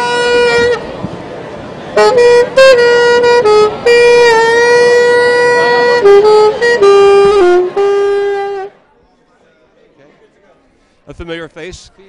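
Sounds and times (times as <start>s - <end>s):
saxophone long note: 0.0s - 1.0s, 1.9s - 8.8s.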